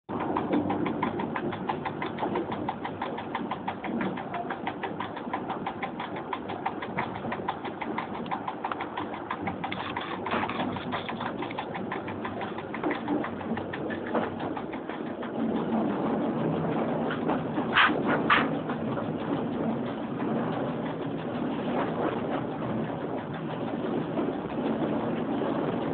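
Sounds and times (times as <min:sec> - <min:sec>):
fast even ticking: 0:00.1 - 0:15.8
electric train running: 0:00.1 - 0:25.9.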